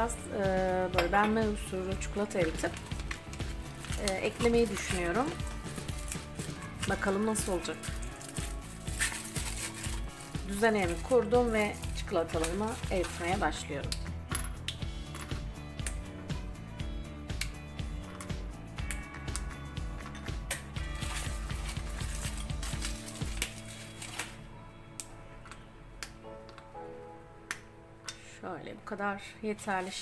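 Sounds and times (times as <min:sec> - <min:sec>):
background music: 0:00.0 - 0:30.0
foil wrapper crinkling: 0:02.5 - 0:13.3, 0:20.9 - 0:24.4
chocolate snapping: 0:27.4 - 0:28.2.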